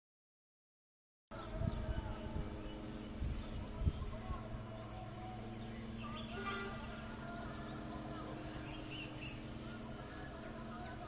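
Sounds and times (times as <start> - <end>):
birds chirping: 1.3 - 11.0
steady low hum: 1.3 - 11.0.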